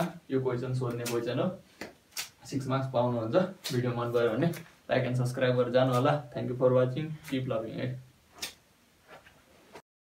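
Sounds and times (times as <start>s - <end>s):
low room hush: 0.0s - 9.8s.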